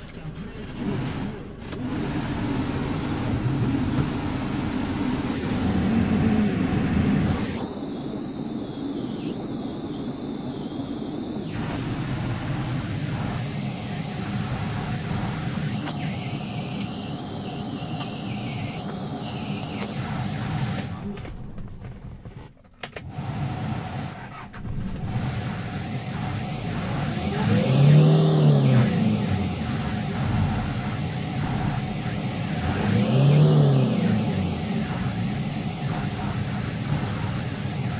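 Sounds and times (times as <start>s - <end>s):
diesel engine idling and revving: 0.0s - 7.8s, 11.2s - 21.2s, 23.1s - 37.9s.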